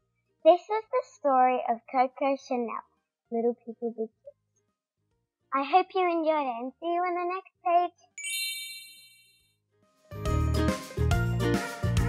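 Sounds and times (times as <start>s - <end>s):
bright high chime: 8.2s - 9.5s.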